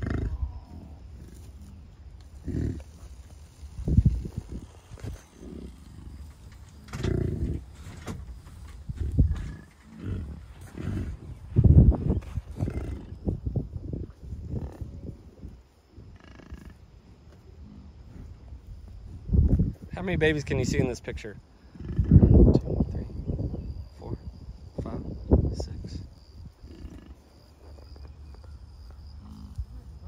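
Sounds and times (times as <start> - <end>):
bison grunting: 0.0 - 3.1, 5.0 - 8.2, 8.9 - 13.3, 21.6 - 22.4, 26.6 - 27.3.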